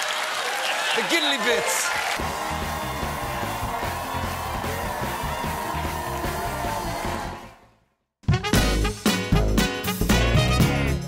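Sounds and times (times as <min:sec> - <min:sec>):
music with repeating bass line: 0:08.3 - 0:11.0.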